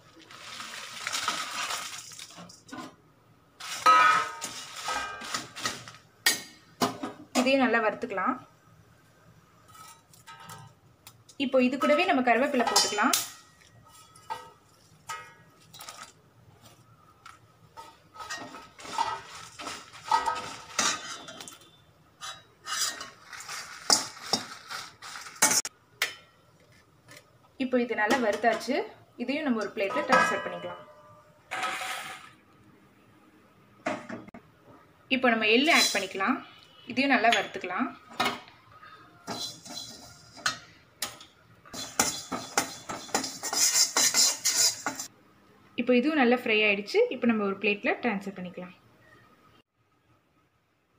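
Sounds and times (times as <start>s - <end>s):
ladle scraping and clinking pan: 17.8s - 25.7s, 39.3s - 40.7s, 41.8s - 45.1s.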